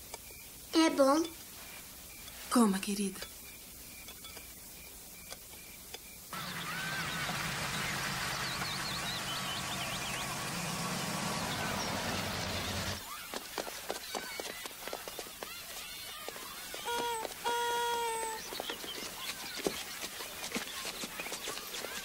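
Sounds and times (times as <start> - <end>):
birds chirping: 2.0 - 22.0
brief calls: 16.8 - 18.6.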